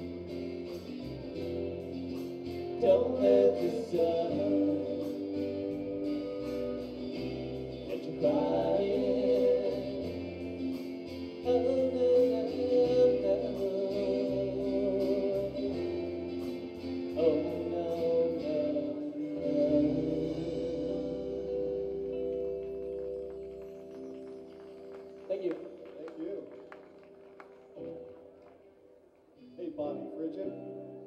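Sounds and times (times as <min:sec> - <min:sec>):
live rock band: 0:00.0 - 0:28.7
man singing: 0:00.1 - 0:07.2, 0:07.8 - 0:22.3.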